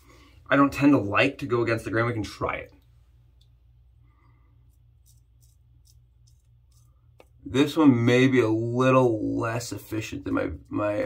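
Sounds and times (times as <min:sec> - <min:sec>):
low steady hum: 0:00.0 - 0:11.0
razor scraping stubble: 0:04.6 - 0:07.8.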